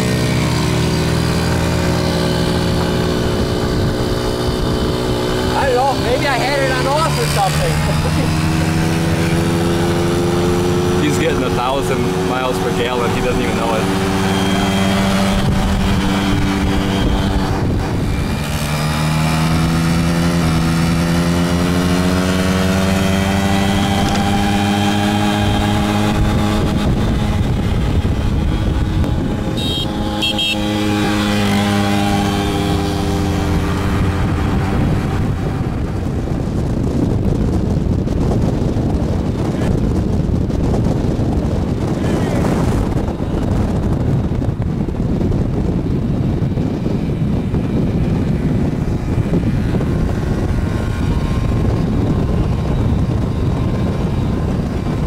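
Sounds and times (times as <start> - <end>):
two-stroke moped engine: 0.0 - 44.4
wind noise on microphone: 0.0 - 55.0.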